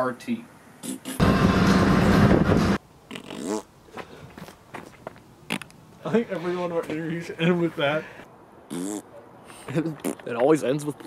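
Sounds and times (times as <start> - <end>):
lip fart raspberry: 0.8 - 1.2, 3.1 - 3.7, 8.7 - 9.1, 9.8 - 10.3.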